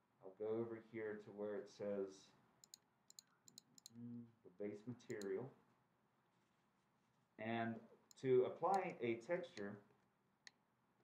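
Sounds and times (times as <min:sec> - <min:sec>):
computer mouse clicks: 0:02.6 - 0:04.0, 0:05.1 - 0:05.3.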